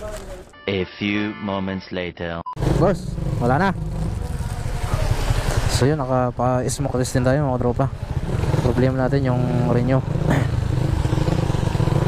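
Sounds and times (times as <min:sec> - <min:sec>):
motorcycle engine rumbling: 0:02.6 - 0:12.0.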